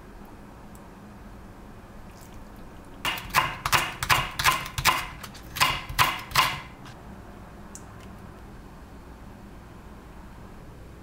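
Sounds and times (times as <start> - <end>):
knife chopping on wooden board: 3.1 - 7.0.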